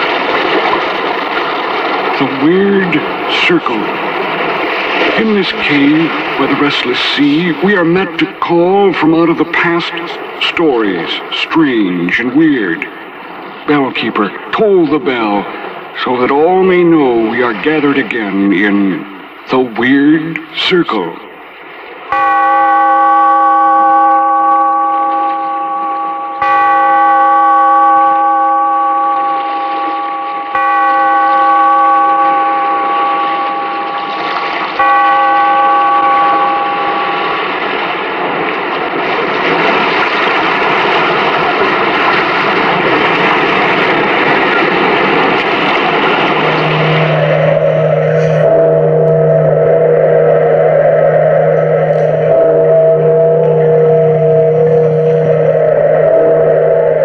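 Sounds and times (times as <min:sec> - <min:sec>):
sea surf rushing: 0:00.0 - 0:57.0
large bell tolling: 0:22.0 - 0:57.0
low steady musical chord: 0:22.1 - 0:38.7, 0:44.7 - 0:57.0.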